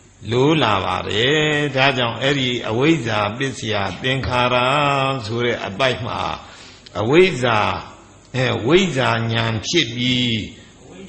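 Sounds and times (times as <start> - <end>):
person chanting a text: 0.2 - 10.7.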